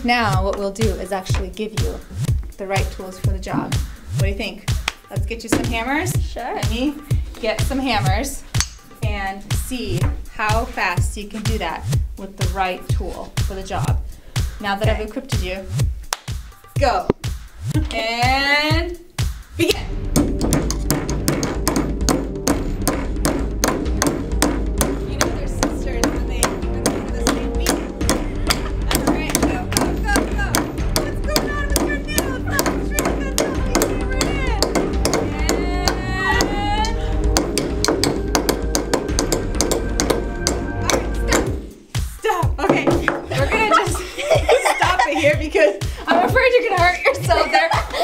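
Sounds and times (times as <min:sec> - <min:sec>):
background music: 0:00.0 - 0:48.0
hammers striking nails into wood: 0:20.2 - 0:36.0, 0:37.3 - 0:41.5.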